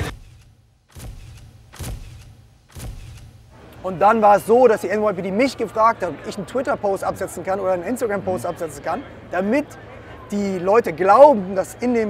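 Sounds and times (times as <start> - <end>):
street crowd noise: 2.4 - 12.0.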